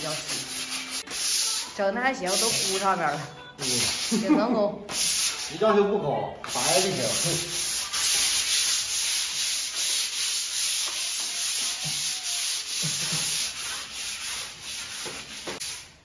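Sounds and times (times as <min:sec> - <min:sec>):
sandpaper rasping on plaster wall: 0:00.0 - 0:02.9, 0:03.6 - 0:04.3, 0:04.9 - 0:05.6, 0:06.4 - 0:16.0.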